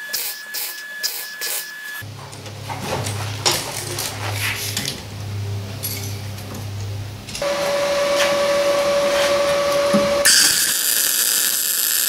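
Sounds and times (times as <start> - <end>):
steady high whine: 7.0 - 12.0
welding arc bursts: 10.2 - 12.0.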